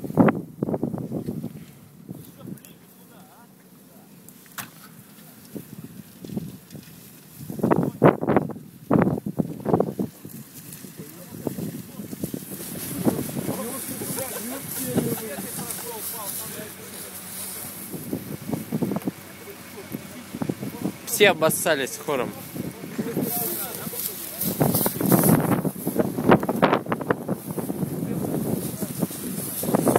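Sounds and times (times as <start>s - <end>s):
indistinct voices outdoors: 1.6s - 29.9s
steady high hiss: 12.4s - 29.9s.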